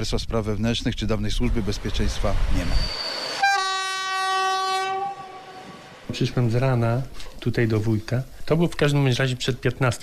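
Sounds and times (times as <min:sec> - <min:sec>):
train horn blast: 0:03.2 - 0:06.0.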